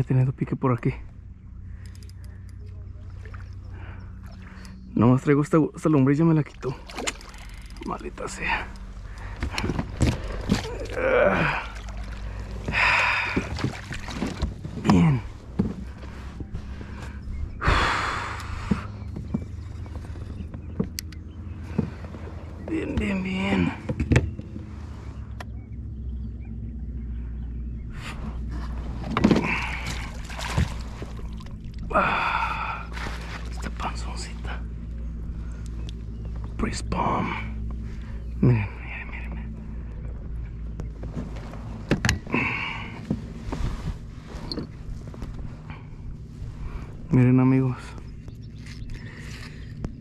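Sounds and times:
steady low hum: 0:00.0 - 0:50.0
water splashes: 0:06.4 - 0:08.6, 0:09.2 - 0:14.9, 0:29.0 - 0:34.5
man grunting: 0:10.6 - 0:11.8.

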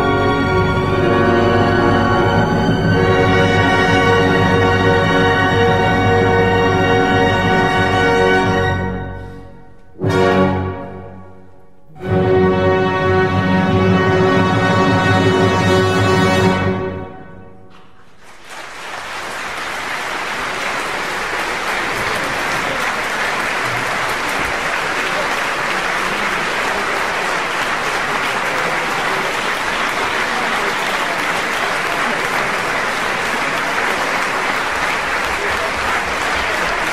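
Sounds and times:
audience applause: 0:17.8 - 0:36.9.

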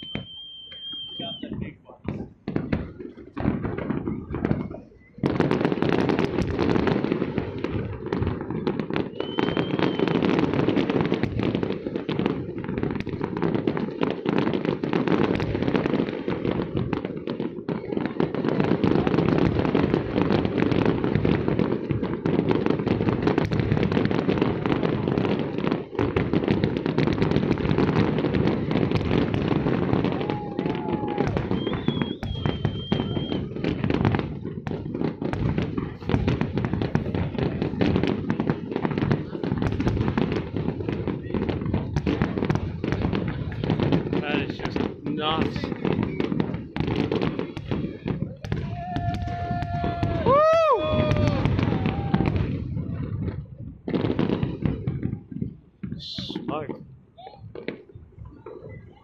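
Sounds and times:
high firework whistle: 0:00.0 - 0:01.7, 0:09.0 - 0:10.6, 0:29.9 - 0:33.8, 0:48.4 - 0:52.6
fireworks bursts and crackling: 0:00.0 - 0:59.0.

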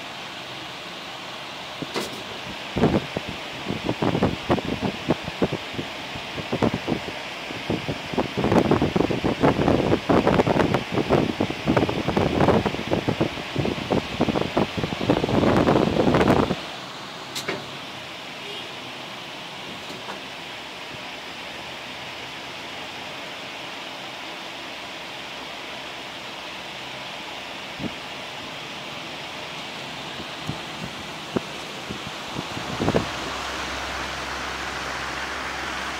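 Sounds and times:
steady hiss: 0:00.0 - 0:35.9.

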